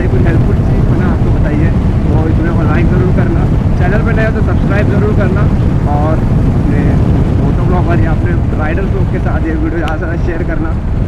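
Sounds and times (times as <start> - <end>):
man talking: 0.0 - 10.8
motorcycle engine: 0.0 - 11.0
wind rumble: 0.0 - 11.0.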